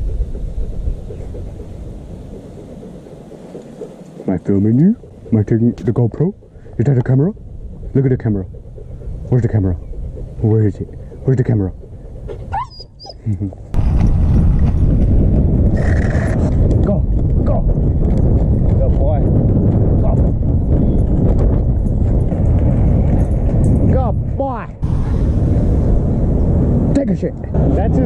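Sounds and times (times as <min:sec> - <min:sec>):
wind rush on microphone: 0:00.0 - 0:28.0
skate wheels rolling on concrete: 0:13.8 - 0:19.8.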